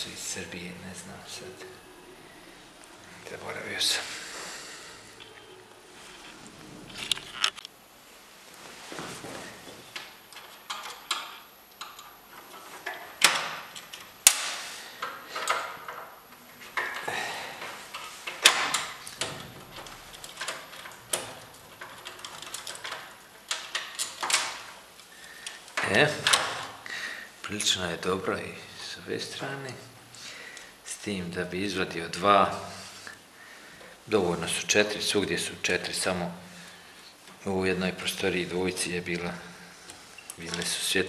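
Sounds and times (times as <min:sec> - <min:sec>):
metal clicks and clinks: 0:10.3 - 0:12.2, 0:17.9 - 0:24.7.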